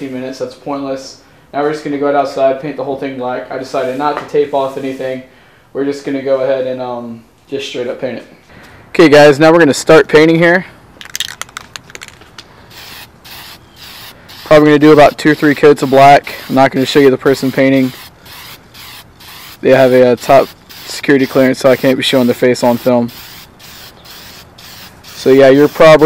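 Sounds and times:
spray can rattling: 0:11.0 - 0:26.0
spray paint hissing: 0:12.7 - 0:26.0.

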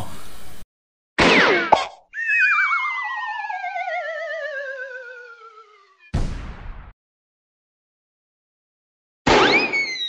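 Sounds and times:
whistle-like tone gliding down: 0:02.2 - 0:06.1
wobbling electronic tone sliding down: 0:02.2 - 0:06.1.

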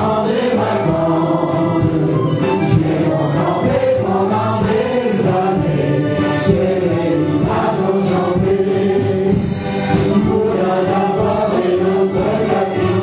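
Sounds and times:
folk dance melody: 0:00.0 - 0:13.0.

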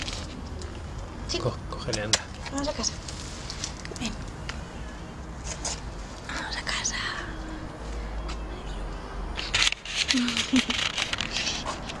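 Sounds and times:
rustling handling noise: 0:09.4 - 0:12.0.

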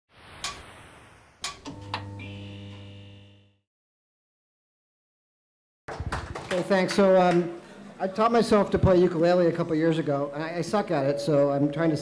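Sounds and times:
low steady held tone: 0:01.7 - 0:03.4.

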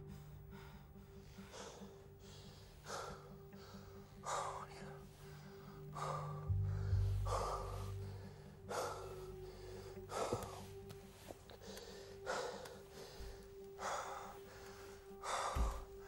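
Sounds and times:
background music: 0:00.0 - 0:16.0
man breathing hard: 0:00.0 - 0:16.0.

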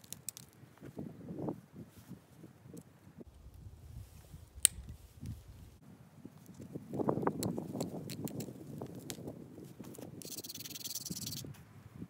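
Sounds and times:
sharp clicks of flaking stone: 0:00.0 - 0:00.6, 0:07.3 - 0:11.4.

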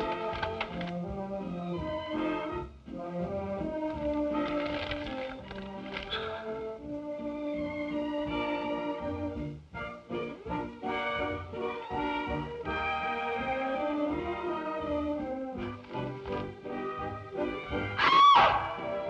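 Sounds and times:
orchestral film score: 0:00.0 - 0:19.0.

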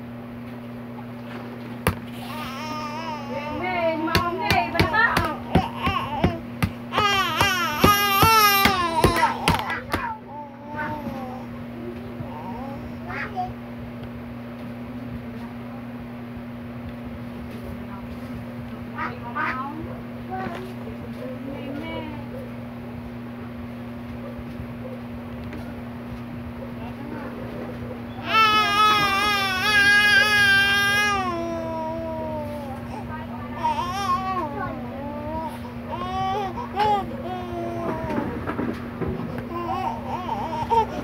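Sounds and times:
steady low hum: 0:00.0 - 0:41.0
toddler whining: 0:02.2 - 0:11.6, 0:28.2 - 0:38.5, 0:39.5 - 0:41.0
toddler squealing: 0:28.2 - 0:31.9.

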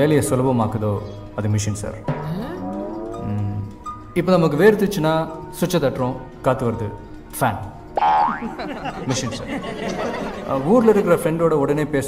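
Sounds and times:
background music score: 0:00.0 - 0:12.0
film dialogue: 0:00.0 - 0:12.0
springy boing sound effect: 0:08.0 - 0:08.5.

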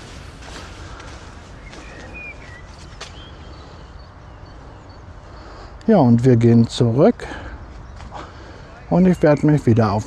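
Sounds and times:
faint bird chirps: 0:00.8 - 0:05.8.

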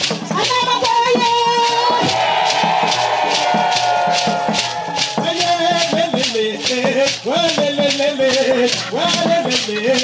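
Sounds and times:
shaken rattles beating: 0:00.0 - 0:10.0.

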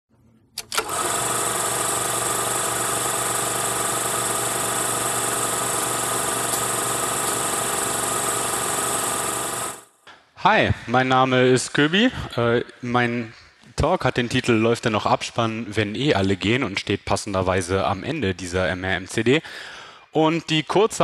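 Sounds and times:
projector clicks: 0:00.6 - 0:01.6, 0:04.5 - 0:08.0
film projector clatter and hum: 0:00.6 - 0:09.9.

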